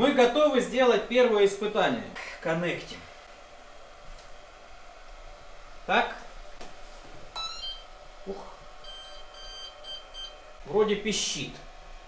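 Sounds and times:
short even beeps: 8.8 - 10.4.

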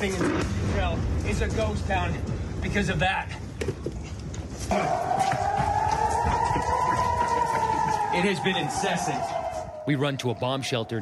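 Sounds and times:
rising and falling alert siren: 4.8 - 11.0.

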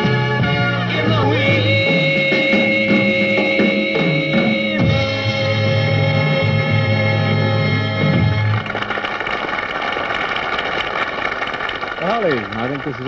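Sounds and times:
rock band with vocals: 0.0 - 8.5
audience applause: 8.2 - 13.0.

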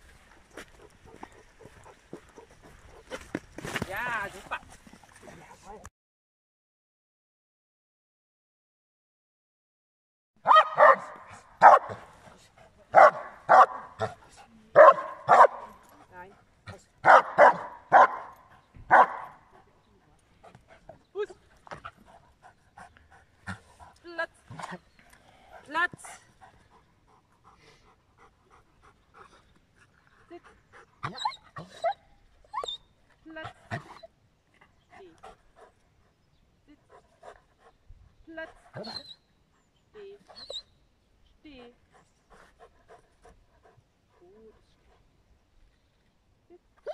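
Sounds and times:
dog barking deeply: 10.4 - 12.0, 12.9 - 14.2, 14.8 - 15.7, 17.0 - 18.3, 18.9 - 19.4.

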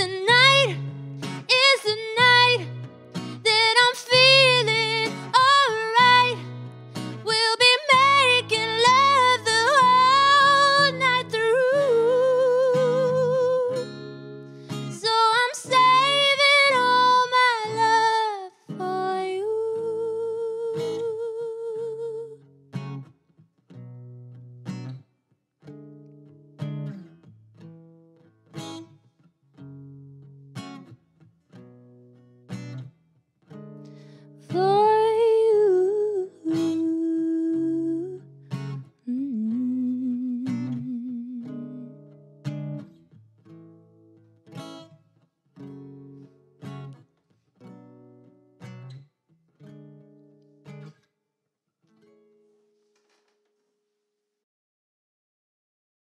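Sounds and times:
guitar accompaniment: 0.0 - 51.1
woman singing long notes: 34.6 - 38.2, 39.1 - 41.9.

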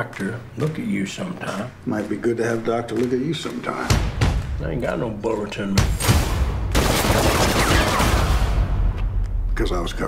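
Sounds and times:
rapid automatic gunfire: 6.7 - 8.6.

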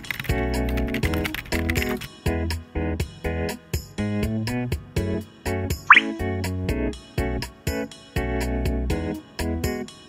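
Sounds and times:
light bouncy background music: 5.8 - 8.0
rising bloop sound effect: 5.9 - 6.2.

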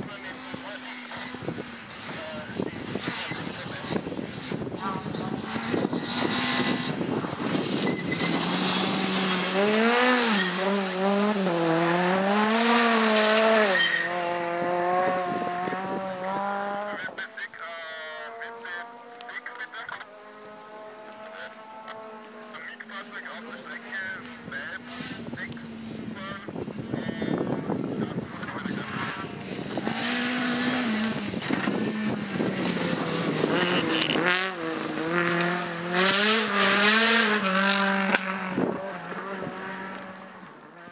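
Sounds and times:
fainter second rally car engine: 0.0 - 40.9
rally car engine revving: 0.0 - 40.9.

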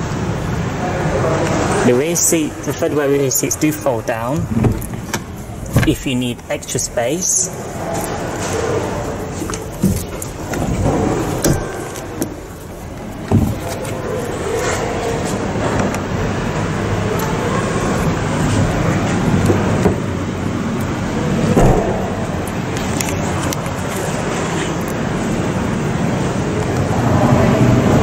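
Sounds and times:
steady background noise: 0.0 - 28.0
car seat knocks and clicks: 13.3 - 13.9, 21.6 - 22.1.

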